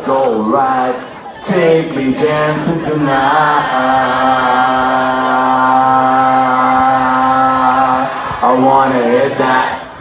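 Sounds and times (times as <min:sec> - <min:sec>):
crowd singing: 0:00.0 - 0:10.0.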